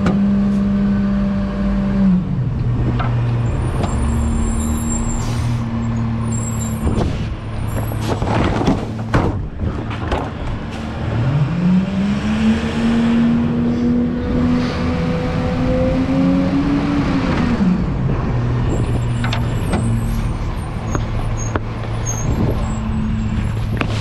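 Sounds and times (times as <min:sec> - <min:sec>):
truck diesel engine pulling away: 0:02.6 - 0:08.1
truck body rattling: 0:06.1 - 0:10.7.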